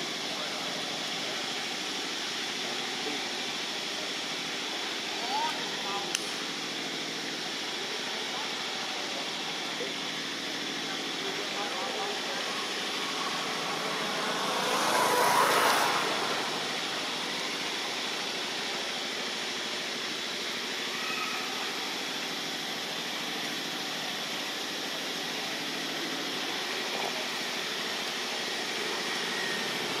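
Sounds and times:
outdoor rushing noise: 12.0 - 19.0.

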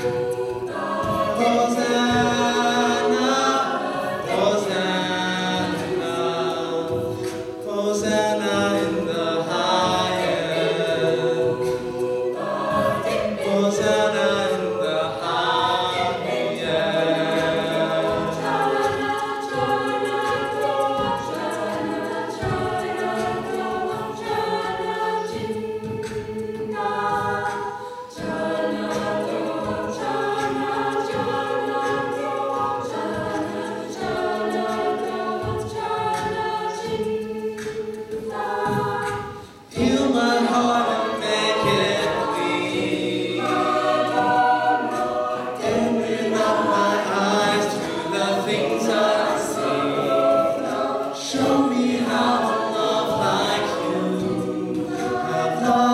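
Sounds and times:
a cappella group singing: 0.0 - 55.9
male lead voice singing: 7.7 - 11.5.

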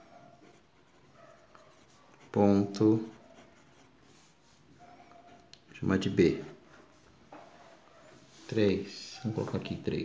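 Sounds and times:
pen scratching on paper: 0.4 - 4.6.

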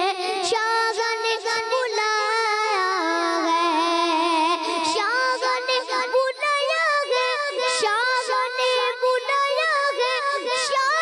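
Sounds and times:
boy singing devotional poem: 0.0 - 11.0.

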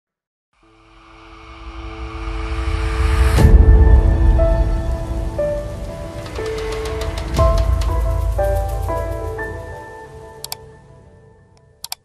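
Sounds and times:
rain-like hiss: 0.7 - 10.5
heavy low rumble: 1.2 - 9.7.

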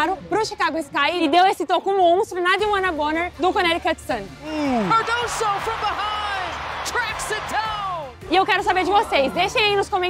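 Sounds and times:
background music: 0.0 - 10.0
excited sports commentator: 4.6 - 10.0.

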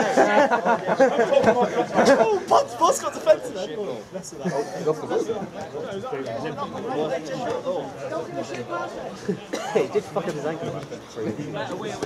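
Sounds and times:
men talking over one another: 0.0 - 12.0.

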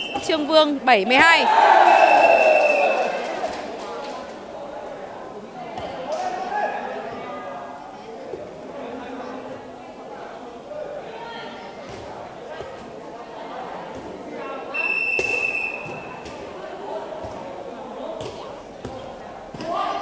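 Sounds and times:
voices and chatter: 0.0 - 20.0
referee's whistle blast: 1.8 - 3.1, 14.7 - 16.2.

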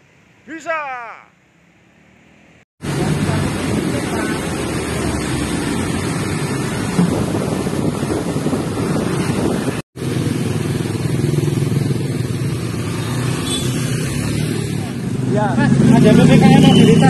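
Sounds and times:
motorcycle engine running: 9.4 - 13.8.

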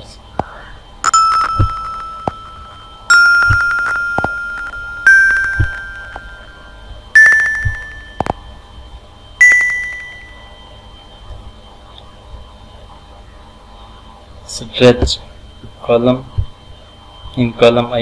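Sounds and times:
rising xylophone notes: 1.1 - 8.3.

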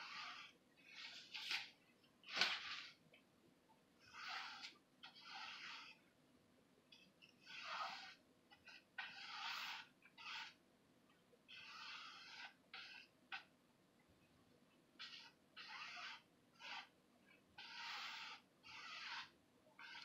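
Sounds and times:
tool scraping paint on canvas: 0.0 - 3.0, 4.0 - 6.0, 6.9 - 10.6, 11.5 - 13.5, 15.0 - 20.0.

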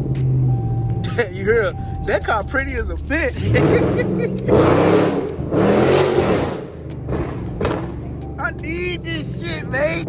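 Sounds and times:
car engine accelerating hard: 0.0 - 10.0
exhaust pops and crackles: 6.2 - 9.2.

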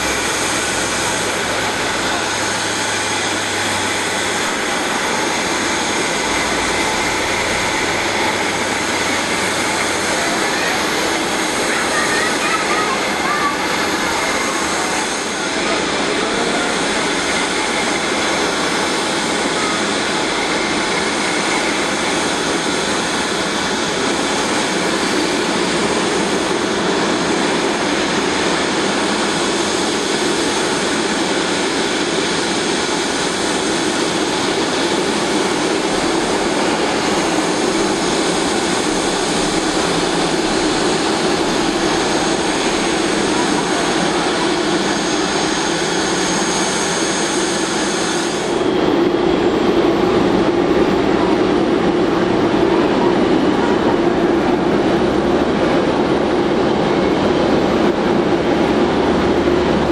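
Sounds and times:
jet engines idling: 0.0 - 59.9.

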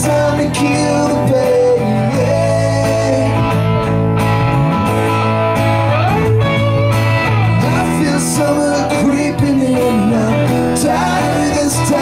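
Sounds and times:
acoustic guitar: 0.0 - 12.0
electric bass guitar: 0.0 - 12.0.

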